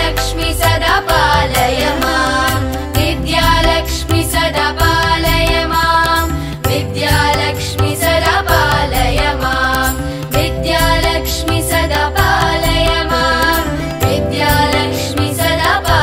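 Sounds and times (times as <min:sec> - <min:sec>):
percussion: 0:00.0 - 0:16.0
steady drone: 0:00.0 - 0:16.0.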